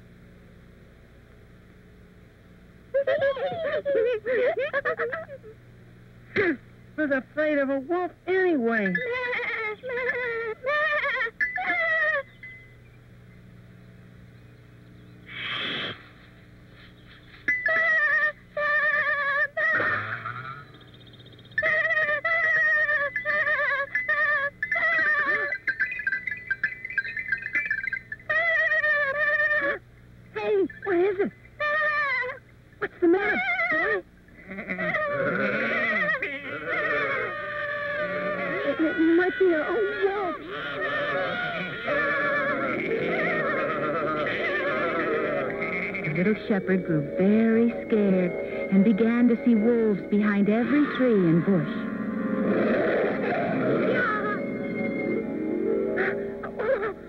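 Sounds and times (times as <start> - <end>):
snake hiss: 15.3 - 16.2
cartoon lamb bleating: 33.2 - 46.4, 52.5 - 54.4.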